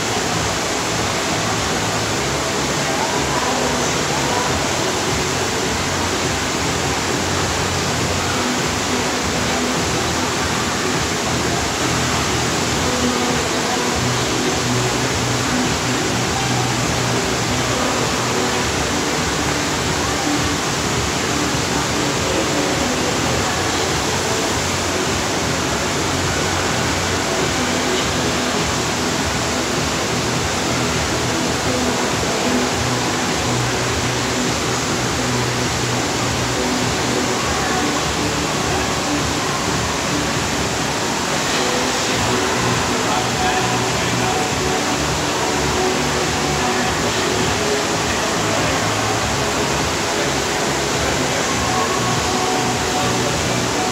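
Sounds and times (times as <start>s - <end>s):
faint music: 0.0s - 53.9s
water rushing over surf ride: 0.0s - 53.9s.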